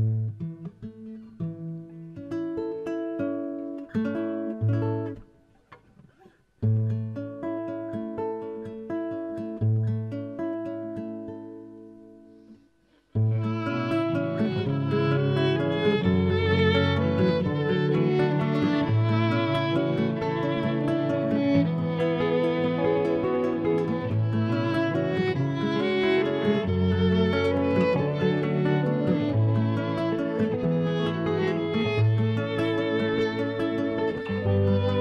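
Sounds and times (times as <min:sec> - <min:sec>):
acoustic guitar picking arpeggios: 0:00.0 - 0:35.0
violin bowed notes: 0:13.2 - 0:35.0.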